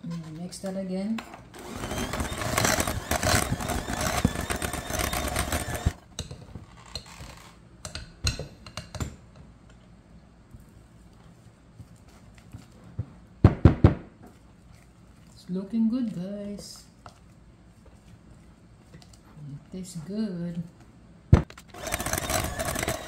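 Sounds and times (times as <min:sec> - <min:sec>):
electric hand mixer running: 0:01.6 - 0:06.0, 0:21.7 - 0:23.0.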